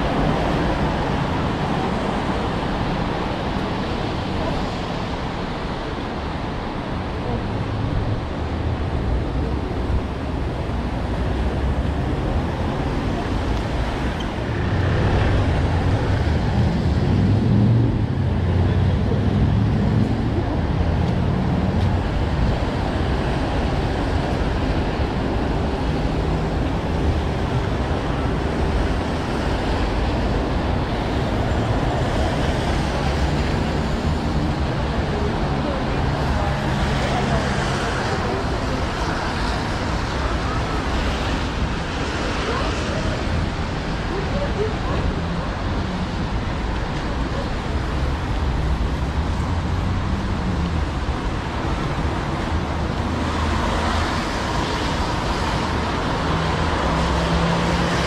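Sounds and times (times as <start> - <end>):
traffic on wet road: 0.0 - 58.0.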